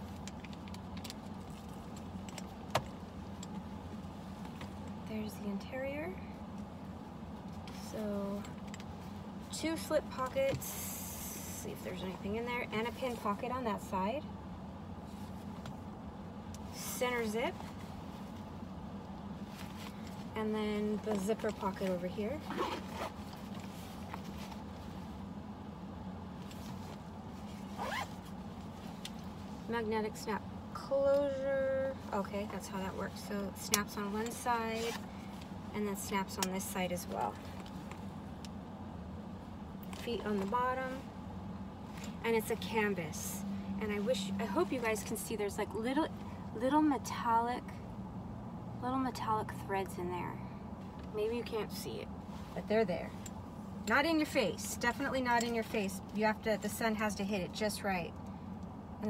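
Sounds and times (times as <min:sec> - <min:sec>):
steady low hum: 0:00.0 - 0:59.0
zipper opening and closing: 0:22.3 - 0:23.6, 0:27.5 - 0:28.3, 0:34.8 - 0:35.1.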